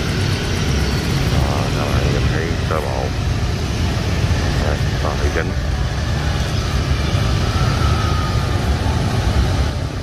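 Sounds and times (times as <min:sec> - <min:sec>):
low rumble of street traffic: 0:00.0 - 0:10.0.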